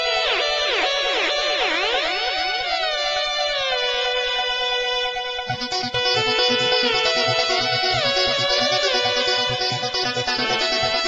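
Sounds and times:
electronic trance music: 0.0 - 11.0.

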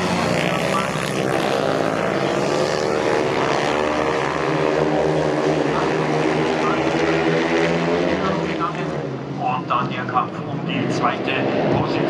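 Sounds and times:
racing sidecar engines: 0.0 - 12.0.

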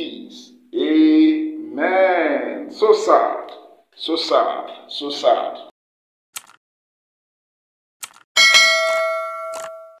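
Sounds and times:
bright bell ding: 8.4 - 10.0.

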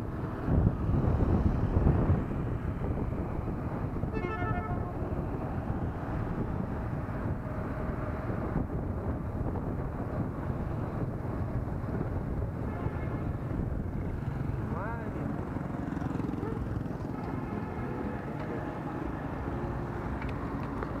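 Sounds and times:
wind on microphone: 0.0 - 17.0.

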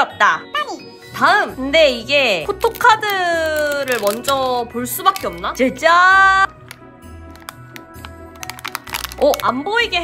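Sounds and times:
soft background music: 0.0 - 10.0
plastic box and foil crinkling: 2.5 - 5.8, 6.5 - 10.0.

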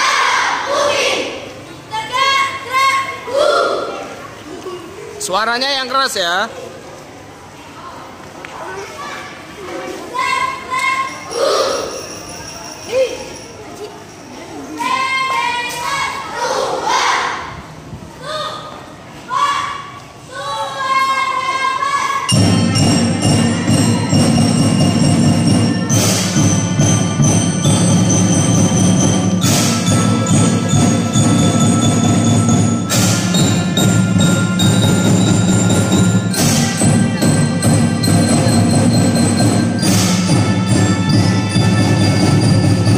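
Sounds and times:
child shouting: 0.0 - 4.1, 10.1 - 11.9, 14.8 - 17.5, 18.2 - 22.3
faint children's voices: 0.0 - 5.2, 6.5 - 24.5
cymbal crash: 22.3 - 42.9
melodicas and mallet keyboards: 22.3 - 42.9
steady drum beat: 22.3 - 42.9.

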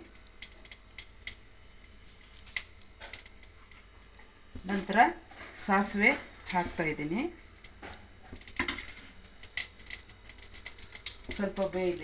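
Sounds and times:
chillies frying in hot oil: 0.0 - 12.0.

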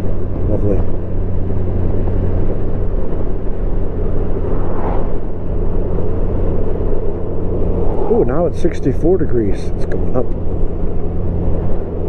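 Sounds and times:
motorcycle engine hum: 0.0 - 12.0
wind and road rush: 0.0 - 12.0.

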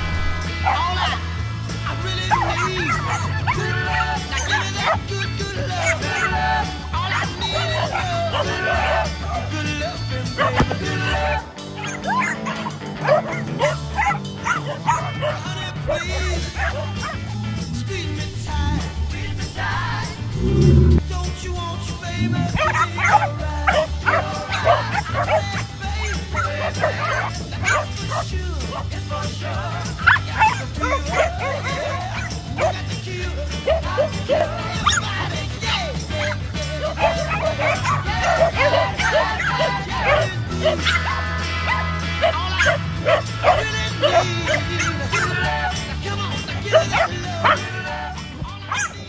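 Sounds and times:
dogs barking in play: 0.0 - 49.0
pop music with bass line: 0.0 - 49.0.

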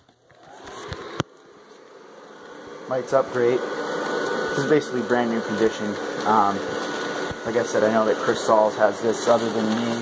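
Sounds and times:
blower fan whirring: 0.0 - 10.0.

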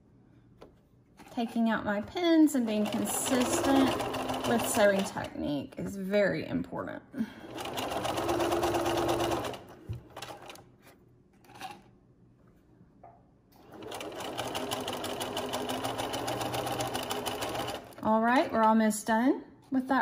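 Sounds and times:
sewing machine stitching: 2.6 - 5.3, 7.5 - 10.6, 13.6 - 18.6.

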